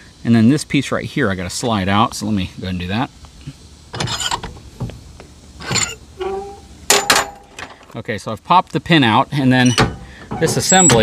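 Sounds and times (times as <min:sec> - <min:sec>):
metal pin scraping and rattling: 0:04.0 - 0:04.5, 0:05.6 - 0:07.8.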